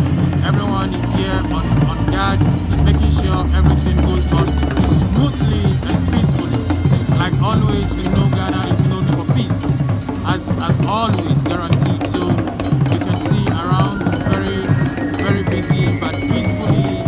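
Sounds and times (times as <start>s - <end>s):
hand drums played in busy rhythm: 0.0s - 17.0s
voices: 0.0s - 17.0s.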